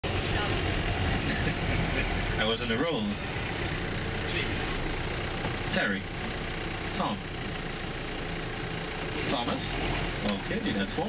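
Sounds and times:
faint passenger voices: 0.0 - 6.2
bus engine hum: 0.0 - 11.0.

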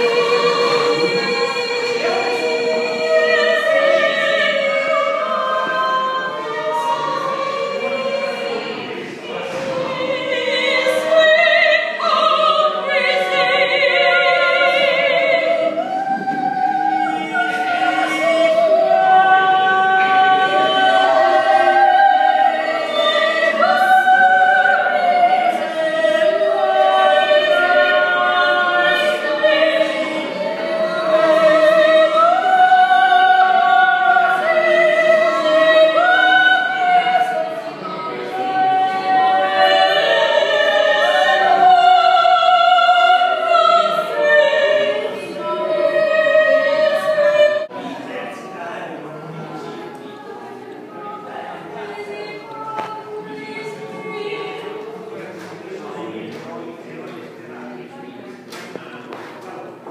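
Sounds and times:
operatic choral singing: 0.0 - 59.9.

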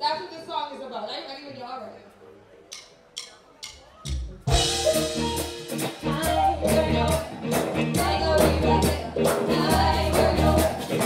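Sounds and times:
live band with drums and bass: 2.7 - 11.0.

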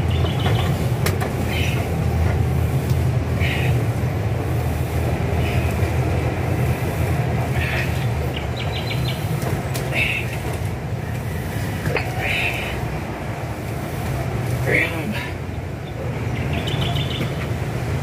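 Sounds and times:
low mechanical rumble: 0.0 - 18.0.

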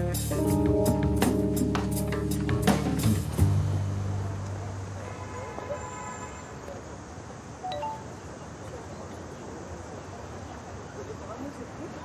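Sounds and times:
outdoor background noise: 0.0 - 12.0
text message alert chime: 7.7 - 8.1.

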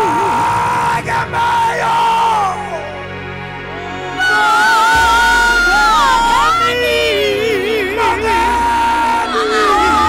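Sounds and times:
backing music: 0.0 - 10.0.

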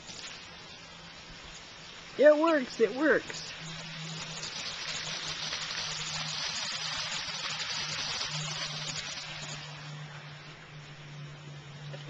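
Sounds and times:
water gushing and splashing: 0.0 - 11.8
pump humming: 0.0 - 12.0.

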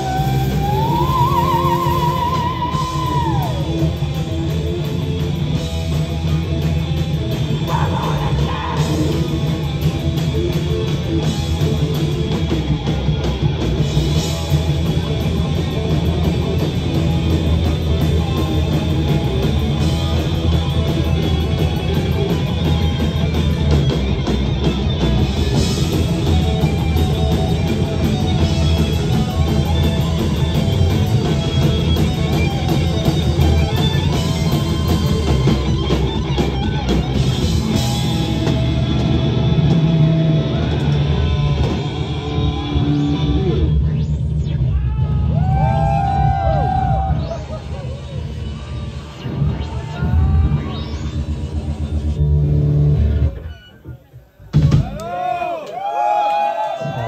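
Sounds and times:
heavy metal band playing live: 0.0 - 53.7.

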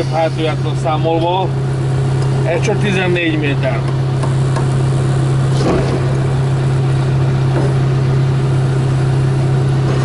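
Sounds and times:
diesel engine droning: 0.0 - 10.0.

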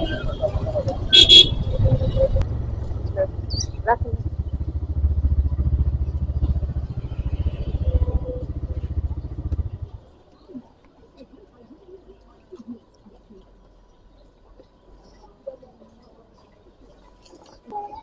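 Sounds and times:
motorcycle engine running: 0.9 - 10.1
vehicle horn honking: 1.1 - 1.8.

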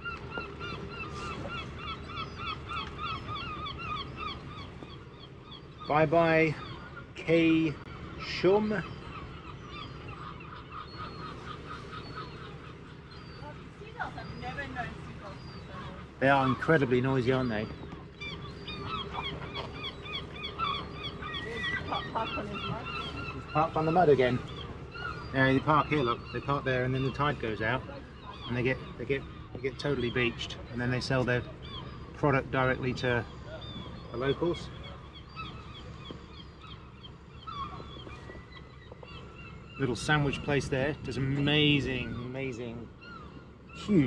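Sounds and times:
gulls calling: 0.0 - 44.0
low steady rumble: 0.0 - 44.0.

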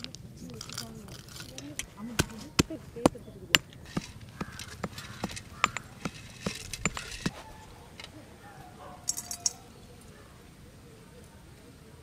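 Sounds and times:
pestle pounding in stone mortar: 2.2 - 7.4.

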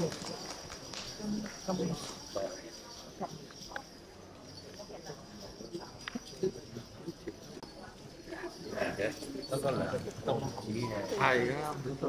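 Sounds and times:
faint murmuring voices: 0.0 - 12.0.

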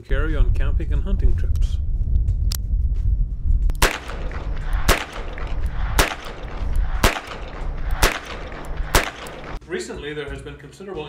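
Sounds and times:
low rumble: 0.0 - 9.6
revolver shots: 3.8 - 9.6.

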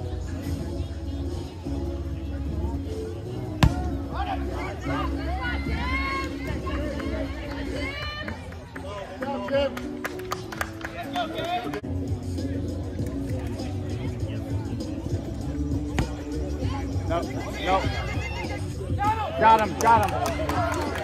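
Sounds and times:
background music: 0.0 - 21.0
kickball being kicked: 3.6 - 4.0, 15.9 - 16.2.

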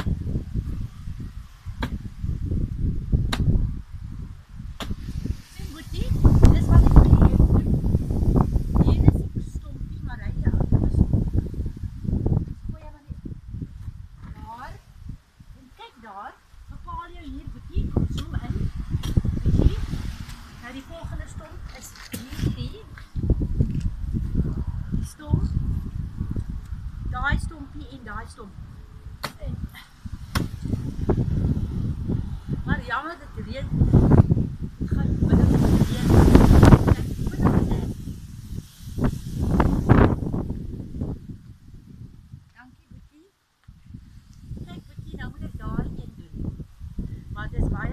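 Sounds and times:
wind buffeting microphone: 0.0 - 47.9
axe chopping roots: 1.8 - 2.0, 3.3 - 3.6, 4.8 - 5.1, 29.2 - 29.4, 30.3 - 30.6.

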